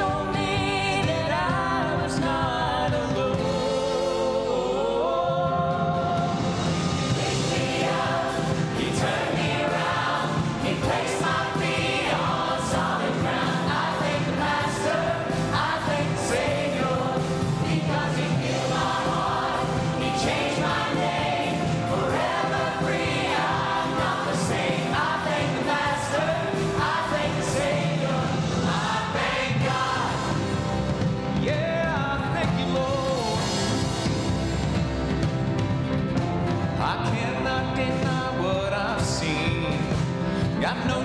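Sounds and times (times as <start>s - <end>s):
church choir singing gospel: 0.0s - 34.6s
musical accompaniment: 0.0s - 41.0s.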